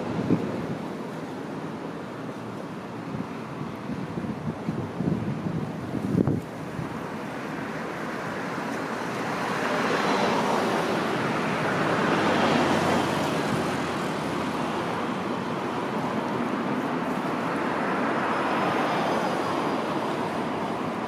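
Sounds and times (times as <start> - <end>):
road traffic passing: 0.0 - 21.0.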